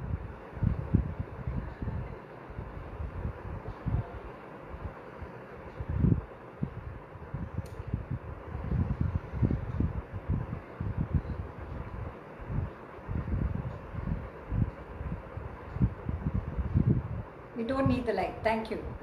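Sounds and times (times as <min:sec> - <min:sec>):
wind buffeting microphone: 0:00.0 - 0:04.2, 0:05.7 - 0:18.1.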